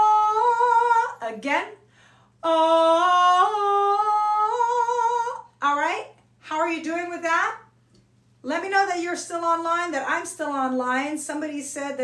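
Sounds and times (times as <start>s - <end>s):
woman singing a vocal exercise: 0.0s - 7.4s.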